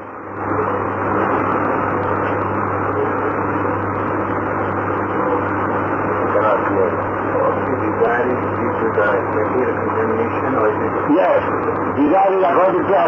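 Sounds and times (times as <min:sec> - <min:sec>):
mains hum: 0:00.0 - 0:13.0
muffled tape noise: 0:00.0 - 0:13.0.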